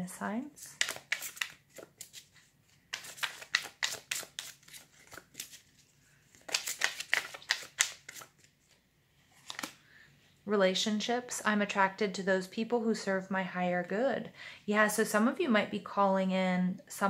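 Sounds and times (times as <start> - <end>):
cards being shuffled: 0.6 - 9.8.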